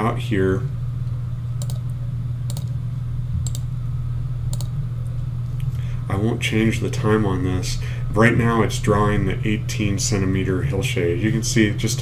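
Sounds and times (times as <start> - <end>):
steady low hum: 0.0 - 12.0
computer mouse clicks: 1.6 - 1.9, 2.5 - 2.7, 3.4 - 3.7, 4.5 - 4.7.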